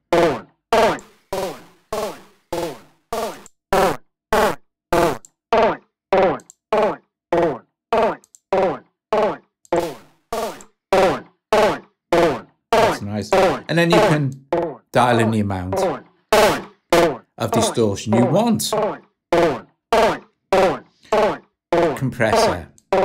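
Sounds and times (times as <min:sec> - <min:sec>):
distorted chopped vocal sample: 0:12.8 - 0:14.4, 0:15.0 - 0:16.5, 0:17.4 - 0:18.8, 0:22.0 - 0:22.8.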